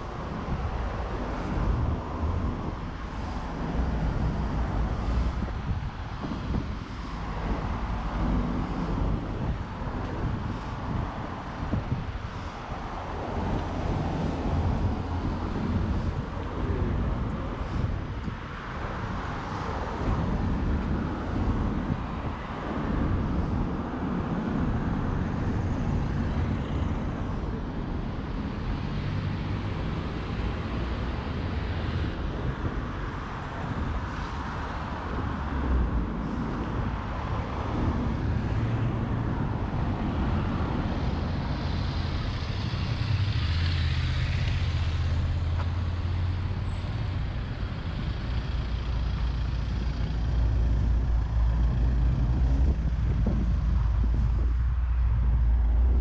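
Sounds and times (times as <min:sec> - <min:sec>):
traffic engine and tyre noise: 0:00.0 - 0:56.0.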